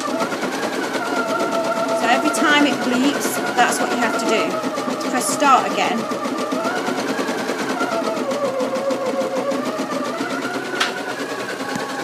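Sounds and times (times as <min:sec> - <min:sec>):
embroidery machine stitching: 0:00.0 - 0:12.0
motor whine wavering in pitch: 0:00.0 - 0:12.0.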